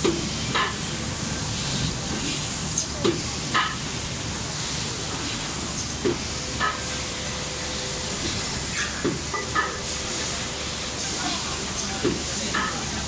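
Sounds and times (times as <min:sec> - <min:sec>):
machine air hissing: 0:00.1 - 0:12.9.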